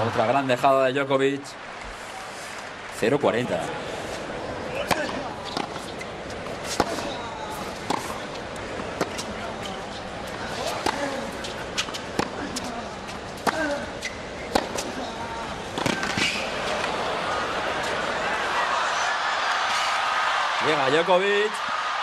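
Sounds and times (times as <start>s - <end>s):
crowd murmur: 3.5s - 20.6s
faint voices: 3.6s - 18.9s
racket striking tennis ball: 6.6s - 7.2s, 14.5s - 15.0s, 15.7s - 16.9s.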